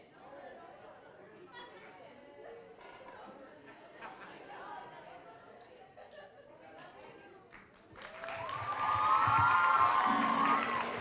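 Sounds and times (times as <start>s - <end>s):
audience chattering: 10.1s - 11.0s.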